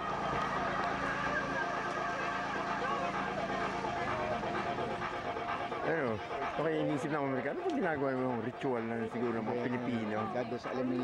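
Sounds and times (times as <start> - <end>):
distant group of voices: 0.0 - 11.0.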